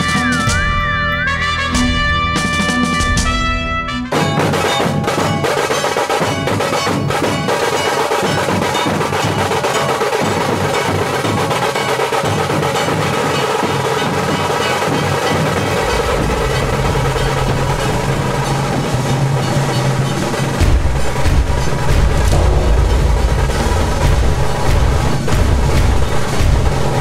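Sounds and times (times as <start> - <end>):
fast drumming: 0.0 - 27.0
deep low bass: 15.8 - 27.0.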